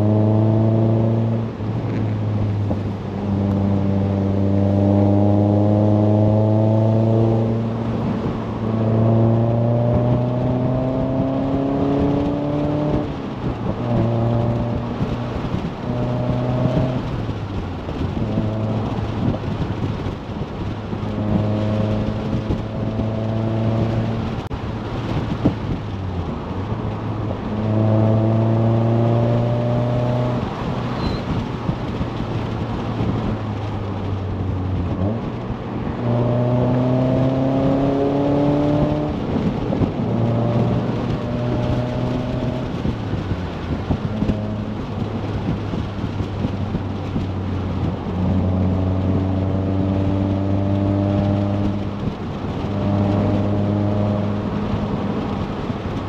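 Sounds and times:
car engine accelerating: 0.0 - 56.0
road and wind noise: 0.0 - 56.0.

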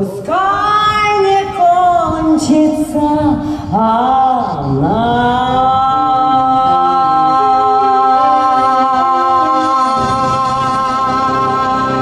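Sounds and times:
woman singing long notes: 0.0 - 12.0
musical accompaniment: 5.1 - 12.0.

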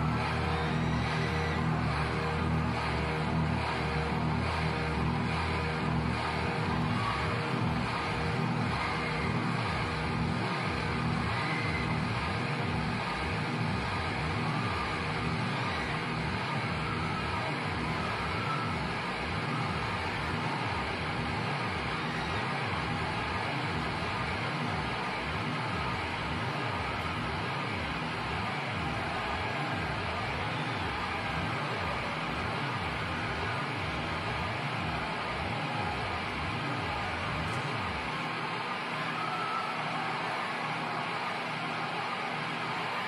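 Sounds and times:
crowd cheering: 0.0 - 43.0.

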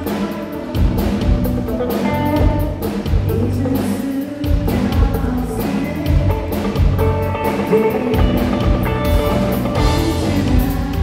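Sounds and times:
drum kit beat: 0.0 - 11.0
live band playing upbeat song: 0.0 - 11.0
man singing into a microphone: 0.0 - 11.0.

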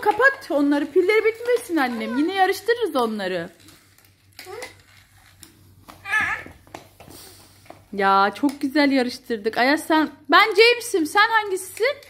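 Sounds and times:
plastic toy trains clicking: 0.0 - 5.6.

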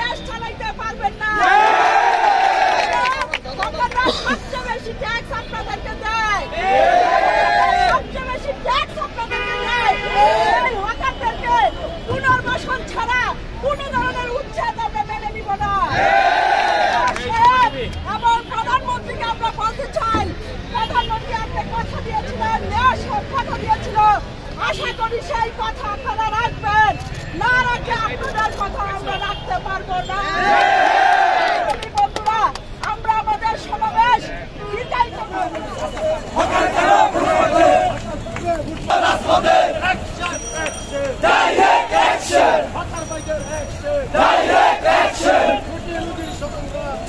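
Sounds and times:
woman shouting slogan: 0.0 - 2.0, 2.8 - 16.2, 16.8 - 30.5, 31.8 - 35.7
crowd babble: 0.0 - 47.0
low traffic rumble: 0.0 - 47.0
crowd of men chanting: 6.5 - 8.0, 15.9 - 17.1, 30.3 - 31.7, 35.3 - 38.0, 38.8 - 40.1, 41.2 - 42.8, 44.1 - 45.8.

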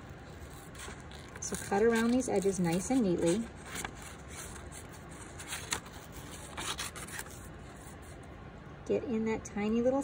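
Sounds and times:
paper rustling: 0.0 - 8.2
scissors snipping paper: 0.4 - 4.6.

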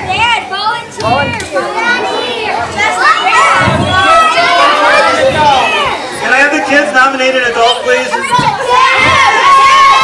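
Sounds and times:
children calling out: 0.0 - 6.2, 7.6 - 10.0.

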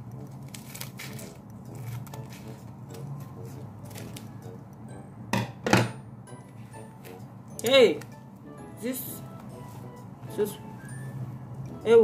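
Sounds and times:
quiet background music: 0.0 - 12.0
scissors snipping plastic: 0.2 - 2.6, 3.8 - 4.3
plastic crinkling: 0.3 - 2.6.

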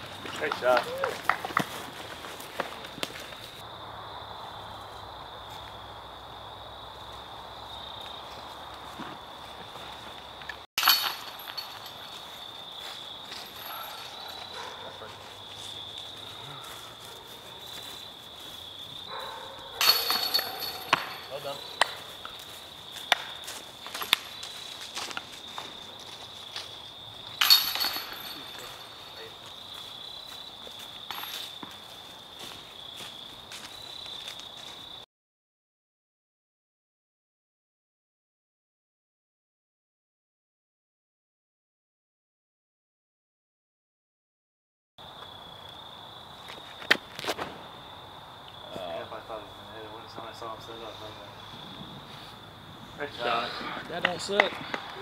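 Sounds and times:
insects trilling: 0.0 - 10.6, 11.4 - 35.0, 45.0 - 55.0.

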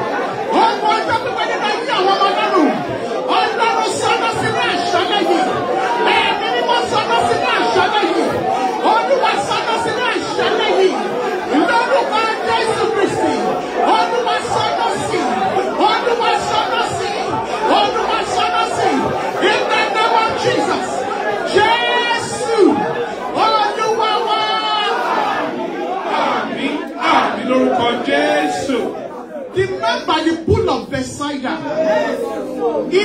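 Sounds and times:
congregation praying aloud: 0.0 - 33.0.

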